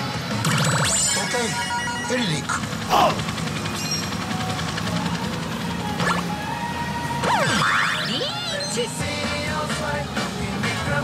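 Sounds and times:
pachinko machine electronic effects: 0:00.2 - 0:06.3, 0:07.2 - 0:09.0
pachinko parlor din: 0:00.3 - 0:04.2.

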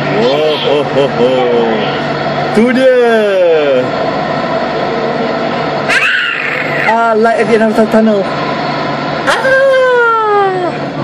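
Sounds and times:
light-rail train running: 0:00.0 - 0:11.0.

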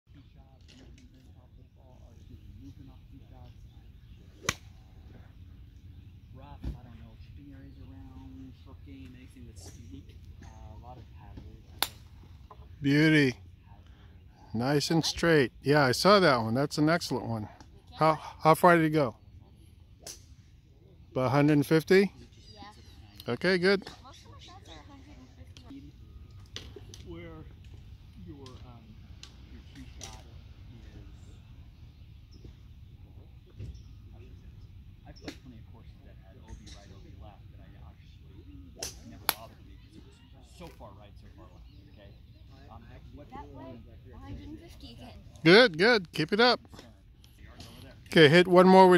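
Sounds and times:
distant chatter: 0:00.1 - 0:48.9
golf club strikes: 0:04.4 - 0:04.7.

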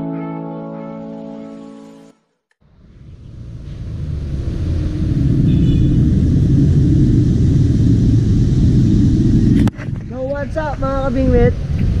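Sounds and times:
low outdoor rumble: 0:02.6 - 0:12.0.

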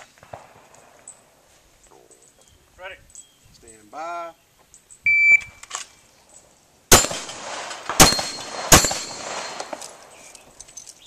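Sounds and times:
shot timer beep: 0:05.1 - 0:05.6
handgun shot: 0:06.9 - 0:10.0.

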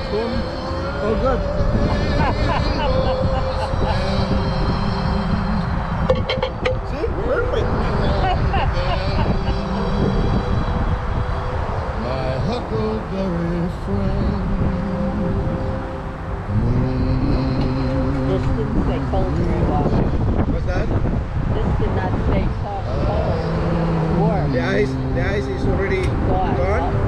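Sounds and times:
people talking indistinctly: 0:00.0 - 0:10.8, 0:12.0 - 0:15.2, 0:16.5 - 0:27.0
steady low rumble: 0:00.0 - 0:27.0.

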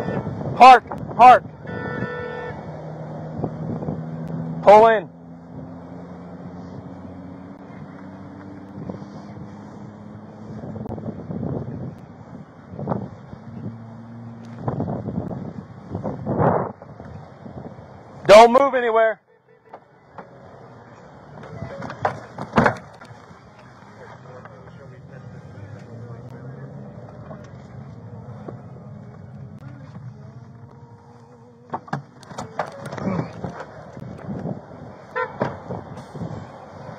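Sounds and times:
car horn honk: 0:00.0 - 0:02.9, 0:19.2 - 0:20.2, 0:35.0 - 0:35.7
car interior hum: 0:00.0 - 0:36.9
highway traffic passing: 0:00.0 - 0:36.9
wind on microphone: 0:08.6 - 0:17.9, 0:32.4 - 0:36.9
clunks and knocks: 0:21.4 - 0:23.2, 0:31.6 - 0:34.5, 0:35.2 - 0:36.0.

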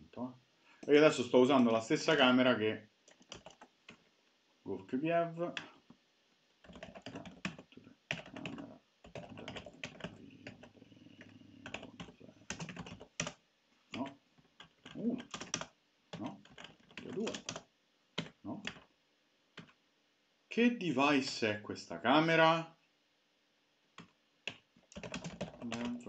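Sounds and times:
typing on a keyboard: 0:03.1 - 0:04.0, 0:06.6 - 0:13.4, 0:14.0 - 0:18.9, 0:24.0 - 0:26.0.

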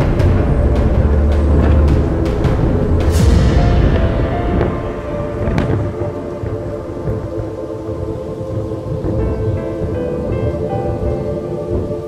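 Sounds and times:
sharp thunder crack: 0:00.0 - 0:07.8
background music sustained chords: 0:00.0 - 0:12.0
rain: 0:00.0 - 0:12.0
thunder rumbling: 0:00.0 - 0:12.0.

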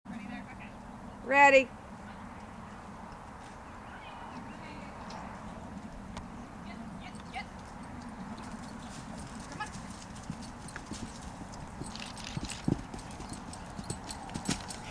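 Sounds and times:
hoofbeats of running horse on dirt: 0:07.0 - 0:14.9.

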